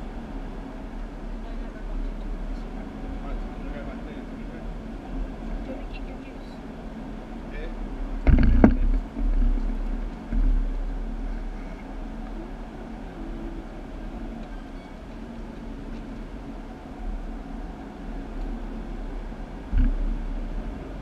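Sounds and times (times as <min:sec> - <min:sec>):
muffled go-kart engines droning: 0:00.0 - 0:21.0
steady low hum: 0:00.0 - 0:21.0
loud knock: 0:08.2 - 0:09.0.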